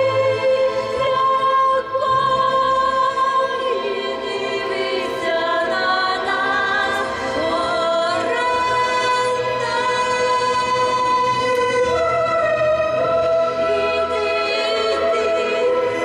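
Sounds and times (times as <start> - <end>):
choir-like backing music: 0.0 - 16.0
woman singing into a microphone: 0.0 - 16.0.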